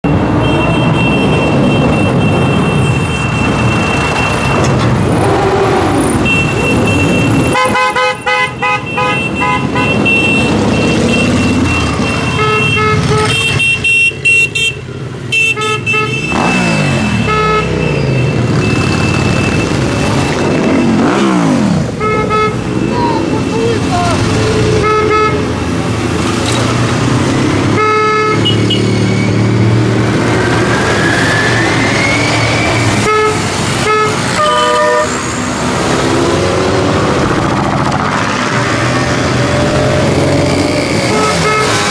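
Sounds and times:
motorcycle horns tooting: 0.1 - 4.6, 6.1 - 25.8, 27.5 - 29.5, 32.9 - 35.2, 40.8 - 41.9
motorcycles revving past: 16.2 - 22.0, 35.4 - 41.9.

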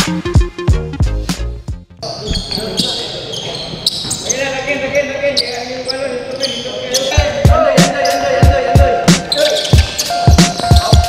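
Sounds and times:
players' voices: 2.0 - 11.0.

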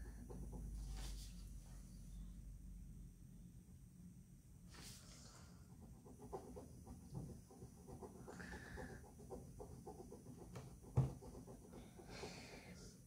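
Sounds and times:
pen scratching on paper: 4.8 - 12.8
breathing close by: 8.2 - 9.1, 11.8 - 13.0.

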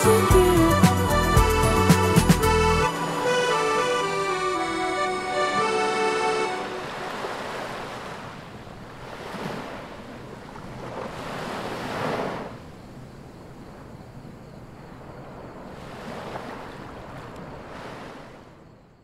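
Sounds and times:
sea waves washing onto shore: 6.4 - 12.8, 14.8 - 18.6.

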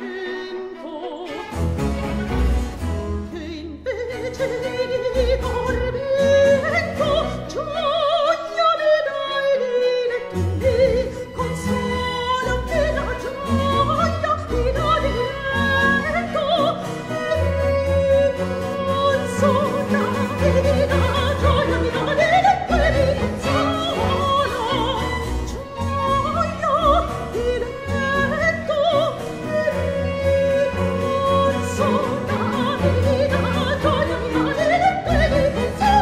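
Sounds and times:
soprano singing with vibrato: 0.0 - 1.6, 3.0 - 36.0
small instrumental ensemble: 0.0 - 7.5, 10.1 - 36.0
chamber orchestra: 0.0 - 36.0.

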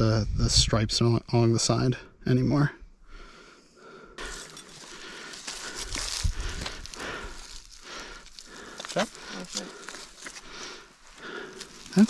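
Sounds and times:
dry grass and leaves rustling: 4.2 - 12.0.

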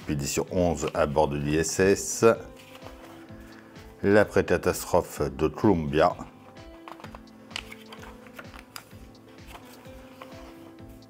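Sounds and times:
soft background music: 0.0 - 11.0
magazine pages rustling: 0.2 - 4.2, 6.0 - 11.0.

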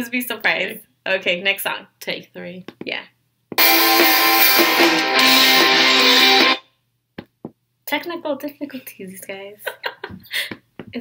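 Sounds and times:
pop song with guitar: 3.6 - 6.6.

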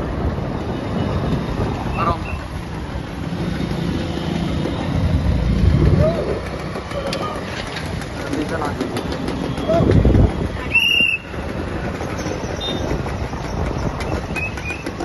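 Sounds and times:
motorcycle engines rumbling: 0.0 - 15.0
road traffic: 0.0 - 15.0
people shouting: 5.9 - 6.4.

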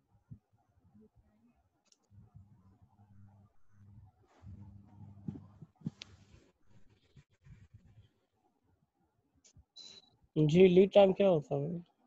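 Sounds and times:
low hum: 2.1 - 6.0.

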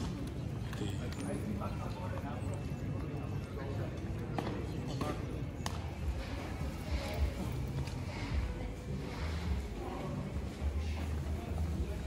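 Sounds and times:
people talking nearby: 0.0 - 12.0.

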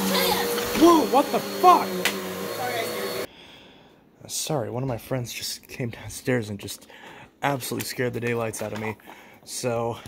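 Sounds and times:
vacuum cleaner running: 0.0 - 3.3.

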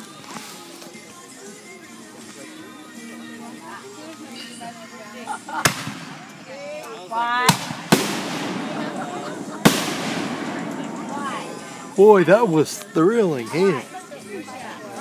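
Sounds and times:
fireworks bangs: 7.5 - 12.4
rushing firework tails: 7.5 - 12.6.

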